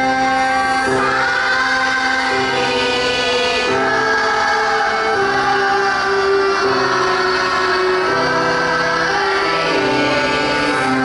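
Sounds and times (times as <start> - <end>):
children singing: 0.0 - 11.0
keyboard: 0.0 - 11.0.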